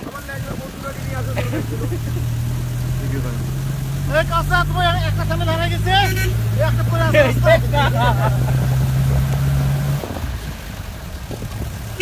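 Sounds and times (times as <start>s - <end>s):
road and wind noise: 0.0s - 12.0s
vehicle engine drone: 0.0s - 12.0s
short horn toot: 6.0s - 6.6s.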